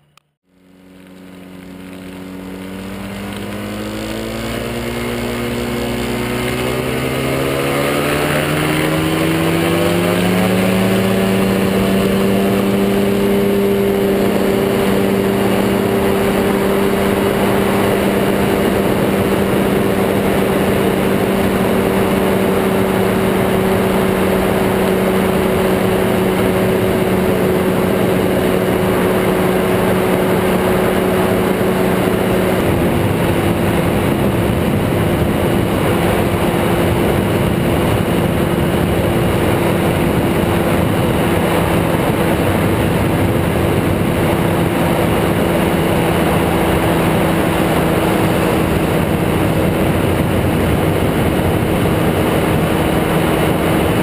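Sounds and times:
ultralight engine throttling up: 0.0 - 54.0.

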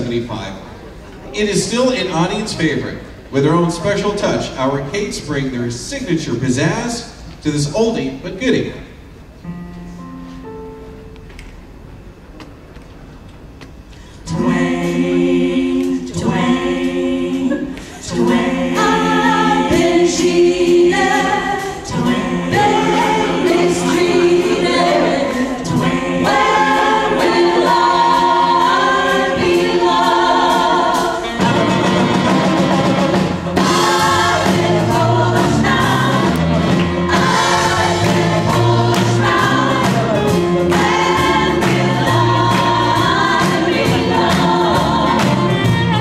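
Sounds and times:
women singing in harmony: 14.2 - 46.0.

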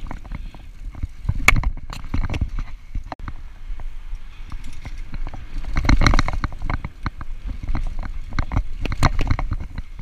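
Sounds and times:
bike rattling over bumps: 0.0 - 10.0
tyre and wind rumble: 0.0 - 10.0.

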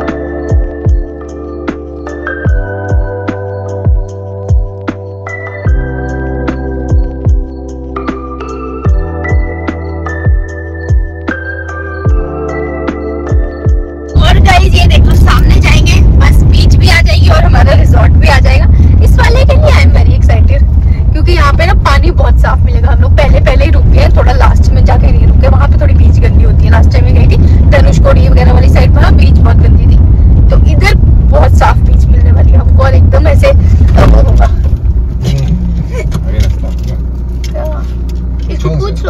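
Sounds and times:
car engine and tyre rumble: 14.2 - 39.0
people talking: 14.2 - 39.0.

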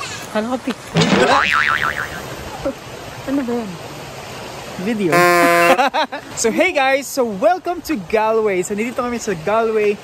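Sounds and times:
cartoon boing spring: 1.0 - 2.3.

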